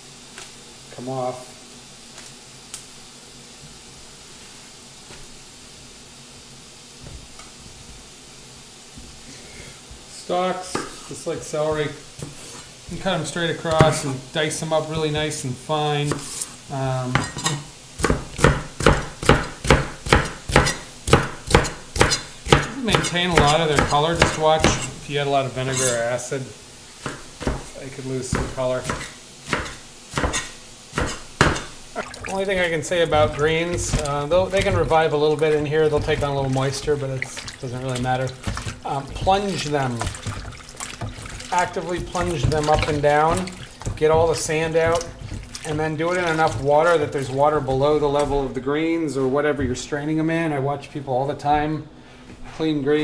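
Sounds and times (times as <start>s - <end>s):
steady hiss: 0.0s - 53.0s
knife chopping on plastic board: 13.7s - 14.0s, 18.0s - 24.9s, 27.0s - 27.7s, 28.3s - 31.7s, 32.5s - 46.7s
leaves rustling: 22.3s - 49.4s.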